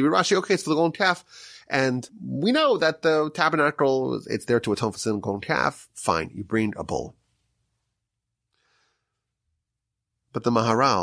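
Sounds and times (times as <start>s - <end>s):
faint breath: 1.2s - 1.7s, 8.5s - 9.3s.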